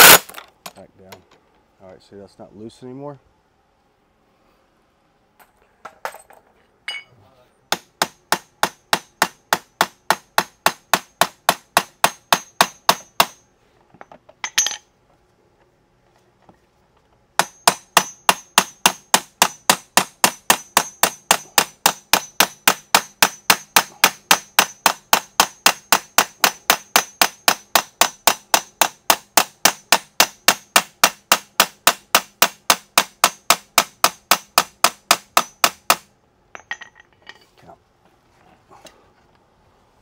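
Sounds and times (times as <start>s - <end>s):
hammer tapping metal pin: 6.9s - 7.1s, 14.0s - 14.8s, 17.4s - 37.4s.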